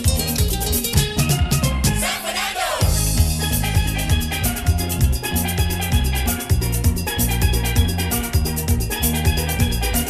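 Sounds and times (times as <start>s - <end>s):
steel band music: 0.0s - 10.0s.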